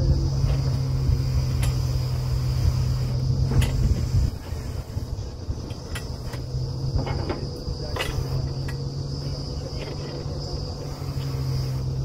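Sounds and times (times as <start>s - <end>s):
drilling rig engine running: 0.0s - 12.0s
high steady whine: 0.0s - 12.0s.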